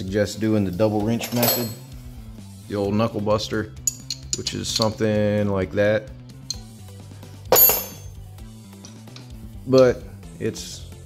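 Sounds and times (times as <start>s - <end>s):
wrench clinking on metal: 1.2s - 1.9s, 3.8s - 5.0s, 7.5s - 10.0s.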